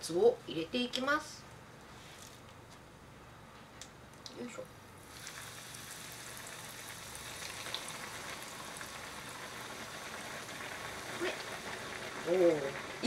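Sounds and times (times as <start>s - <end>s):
oil sizzling and crackling: 5.0s - 13.0s.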